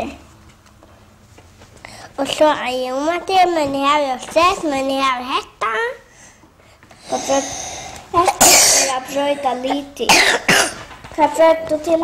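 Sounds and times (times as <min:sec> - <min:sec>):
loud coughs: 0:08.2 - 0:09.1, 0:10.0 - 0:10.9.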